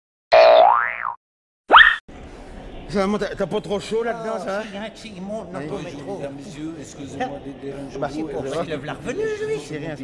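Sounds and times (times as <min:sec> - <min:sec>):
cartoon boing: 0:00.3 - 0:02.0
cartoon sliding pitch sound: 0:01.7 - 0:02.0.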